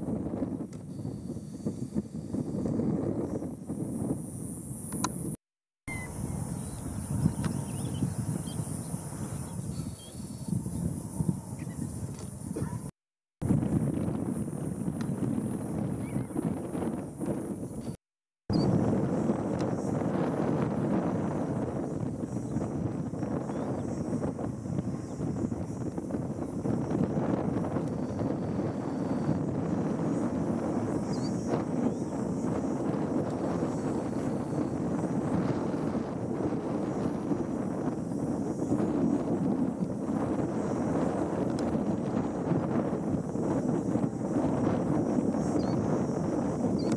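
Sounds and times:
wind buffeting microphone: 0.0 - 46.9
faint high chirps: 5.9 - 12.9.

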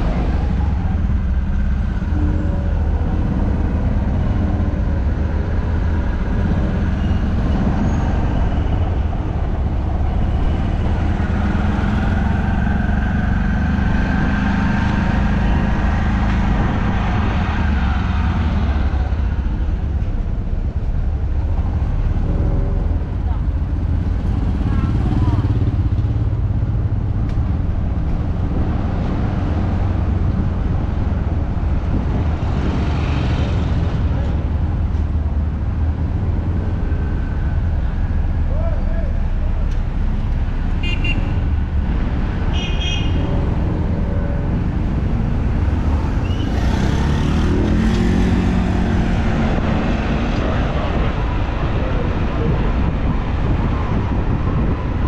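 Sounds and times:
city street traffic: 0.0 - 55.0
people's voices: 38.4 - 39.9.

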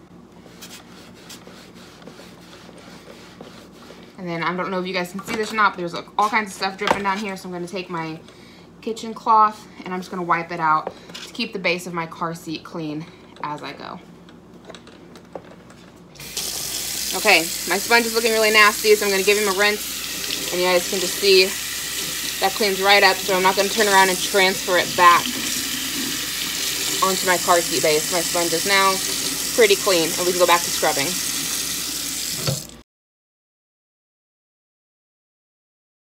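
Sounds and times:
faucet water running into sink: 16.2 - 32.8
tap running into a metal sink: 32.3 - 32.8.

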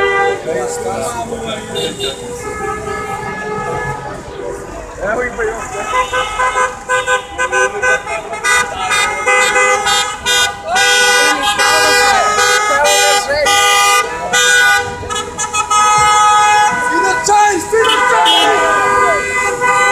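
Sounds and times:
car horns honking: 0.0 - 19.9
people shouting: 9.9 - 14.5, 16.0 - 19.9.

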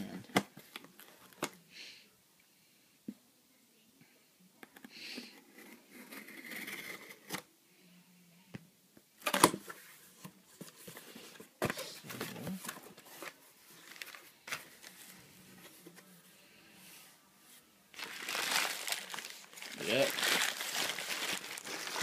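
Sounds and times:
packing paper rustling: 12.1 - 15.1, 18.0 - 22.0.

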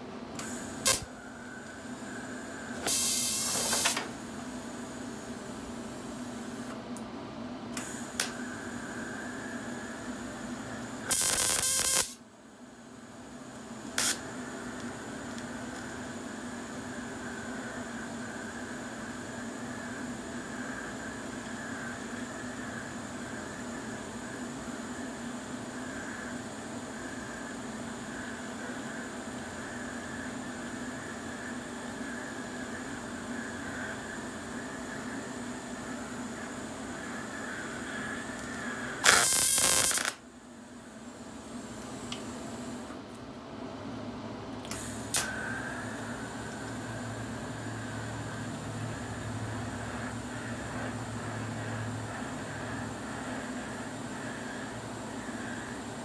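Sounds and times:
loud welding bursts: 0.4 - 1.1, 2.8 - 4.0, 11.0 - 12.2, 14.0 - 14.2, 39.0 - 40.2
welding arc hissing: 0.4 - 5.4, 7.8 - 12.2, 13.8 - 40.2, 44.7 - 56.0.

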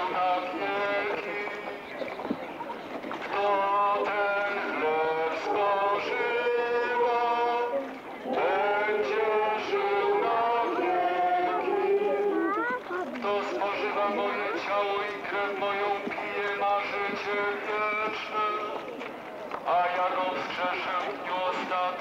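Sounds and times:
voices singing a slow hymn: 0.0 - 2.0, 3.2 - 19.0.

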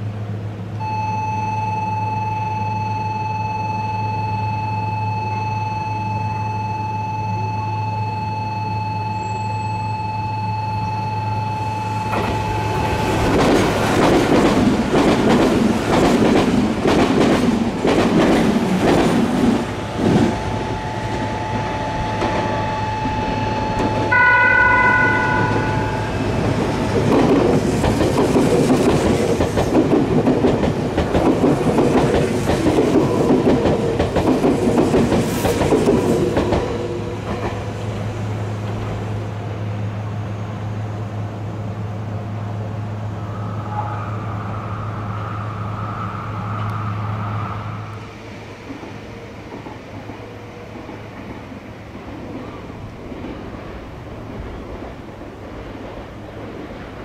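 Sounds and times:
train wheels clattering: 12.1 - 20.4, 21.2 - 39.0
train horn: 21.4 - 26.6.

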